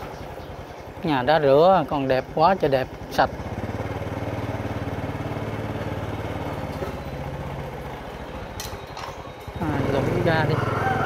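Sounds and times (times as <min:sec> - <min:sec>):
motorbike engine running: 0:00.0 - 0:11.0.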